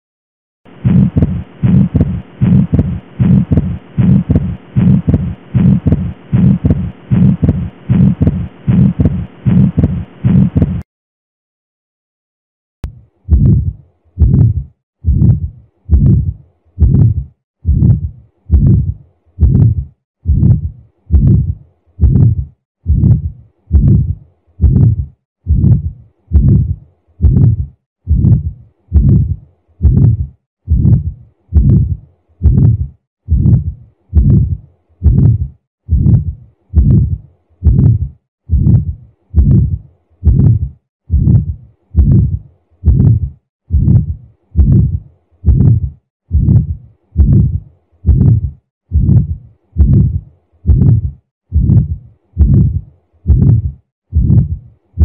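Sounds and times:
heartbeat through stethoscope: 0.7 - 10.9, 12.8 - 54.7.

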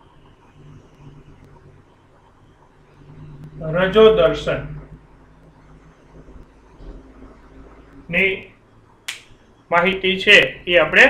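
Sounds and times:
man speaking: 3.6 - 4.8, 8.1 - 8.5, 9.7 - 11.0.

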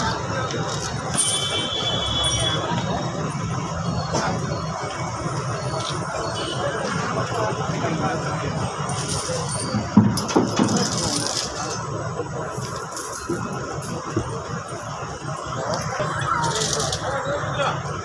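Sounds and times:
chains clinking and jangling: 0.0 - 2.6, 7.6 - 11.9, 12.5 - 14.1, 16.4 - 17.2
murmur of crowd voices: 0.0 - 18.0.

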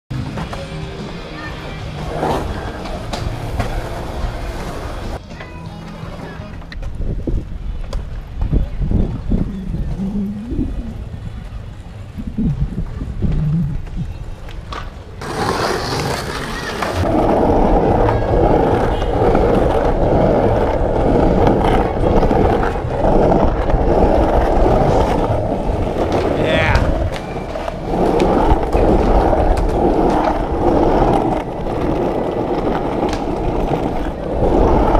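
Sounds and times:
skateboard wheels rolling on asphalt: 0.1 - 34.9
low outdoor rumble: 7.1 - 15.3, 16.8 - 34.9.

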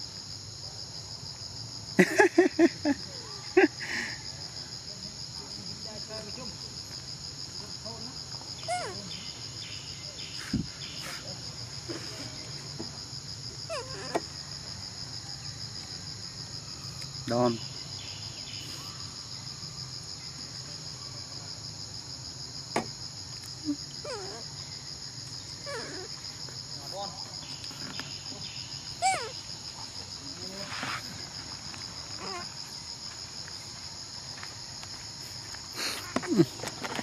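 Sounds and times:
high-pitched insect chorus: 0.0 - 37.0.

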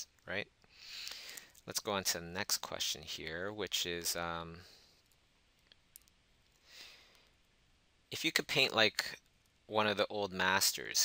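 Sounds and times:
soft breath: 0.7 - 1.6, 6.6 - 7.4.

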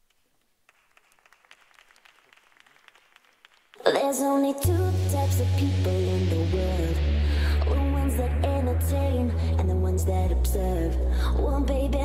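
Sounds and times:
audience clapping: 0.0 - 4.5.

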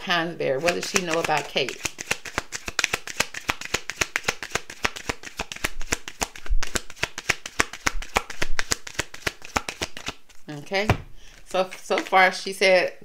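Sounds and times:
cards being shuffled: 0.6 - 12.3.

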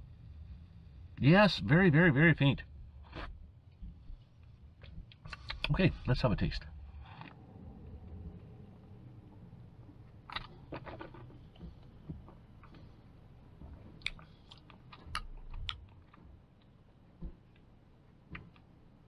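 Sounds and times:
wet mouth clicks and lip smacks: 5.1 - 5.7, 14.0 - 15.8.

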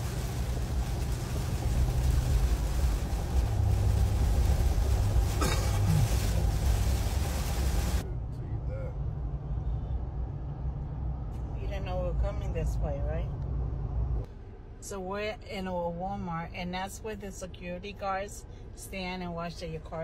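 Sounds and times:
heavy rain and road spray hissing: 0.0 - 8.0
low road rumble: 0.0 - 20.0.

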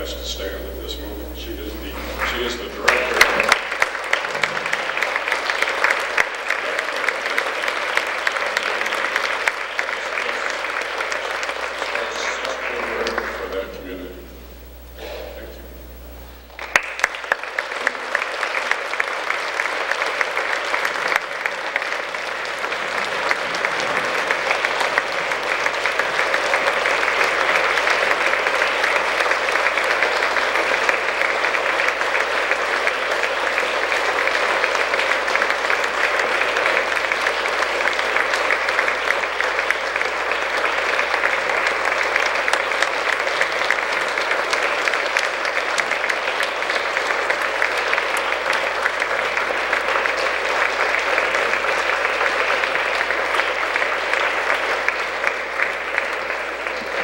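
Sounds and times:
large audience applauding: 0.0 - 57.0.

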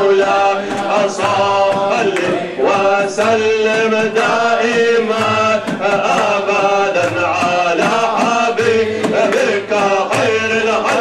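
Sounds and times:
men chanting devotional song: 0.0 - 11.0
regular beat: 0.0 - 11.0.

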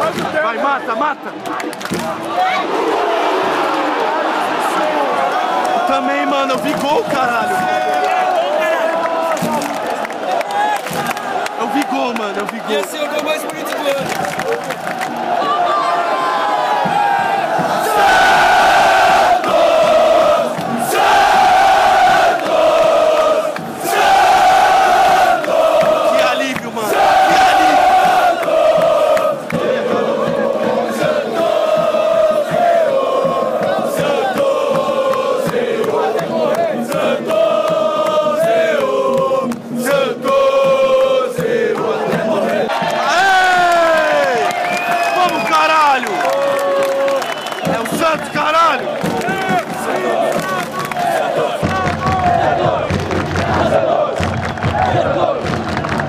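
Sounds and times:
hand claps: 1.4 - 2.2, 9.0 - 15.2, 19.3 - 20.8, 25.3 - 26.7, 28.0 - 29.7, 33.6 - 56.0
crowd singing a chant: 15.1 - 44.8, 46.6 - 56.0.

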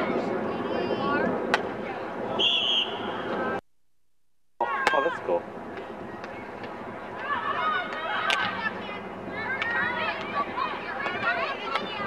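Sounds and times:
whistle blast: 2.4 - 3.1
spectators chatting: 4.6 - 12.0.

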